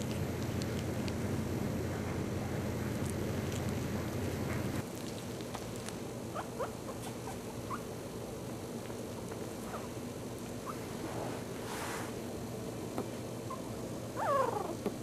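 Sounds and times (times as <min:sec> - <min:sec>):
background hiss: 0:00.0 - 0:15.0
puppies squeaking: 0:06.3 - 0:07.9, 0:13.5 - 0:14.8.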